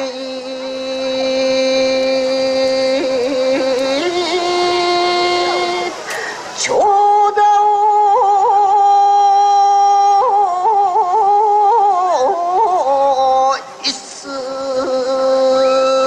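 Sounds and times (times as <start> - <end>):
recorded song over loudspeaker: 0.0 - 16.0.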